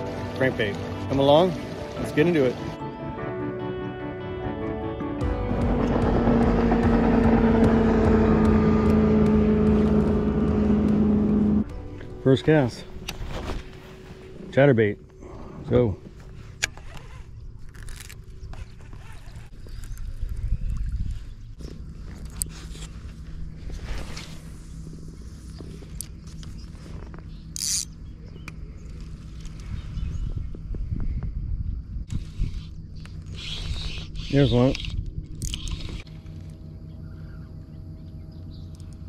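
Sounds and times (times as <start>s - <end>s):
low rumble: 5.2s - 39.0s
fishing reel cranking: 27.6s - 27.9s, 32.1s - 36.1s.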